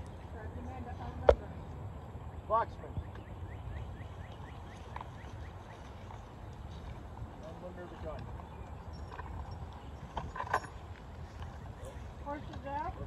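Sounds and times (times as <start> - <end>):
people talking: 0.3 - 1.6, 11.8 - 13.0.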